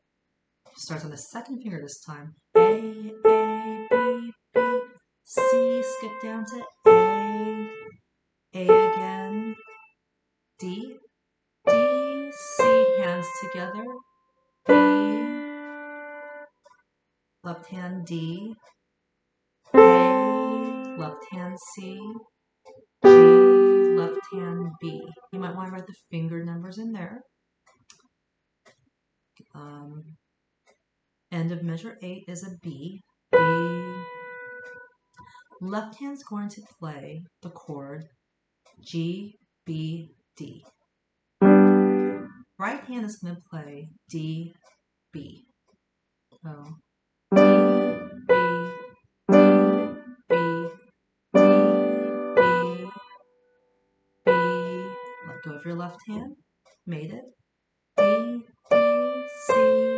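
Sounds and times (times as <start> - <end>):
piano note ringing: 2.6 - 4.9, 19.8 - 21.3, 23.0 - 25.5, 41.4 - 42.4, 47.3 - 50.8, 51.4 - 53.1
piano notes and chords: 2.6 - 7.9, 8.7 - 9.8, 11.7 - 13.8, 14.7 - 16.5, 19.7 - 22.2, 23.0 - 25.5, 33.4 - 34.8, 41.4 - 42.4, 47.3 - 50.8, 51.4 - 53.2, 54.3 - 55.5, 58.0 - 59.9.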